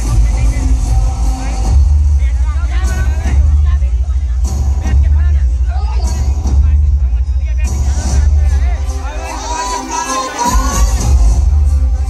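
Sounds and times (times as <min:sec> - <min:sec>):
booming bass: 0:00.0 - 0:12.0
dance song over loudspeakers: 0:00.0 - 0:12.0
person singing: 0:09.2 - 0:12.0.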